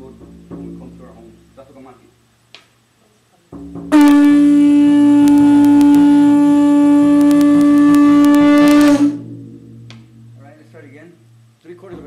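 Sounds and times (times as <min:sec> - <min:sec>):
conch shell trumpet note: 0:03.9 - 0:10.4.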